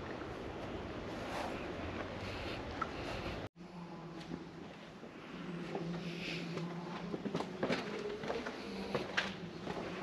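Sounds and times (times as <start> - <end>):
footsteps on paved path: 4.2 - 10.0.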